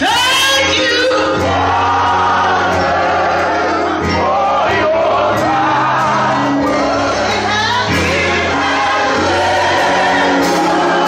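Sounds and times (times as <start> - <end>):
woman singing into a microphone: 0.0 - 1.5, 7.2 - 8.6
choir singing: 0.0 - 11.0
low musical accompaniment: 0.0 - 11.0.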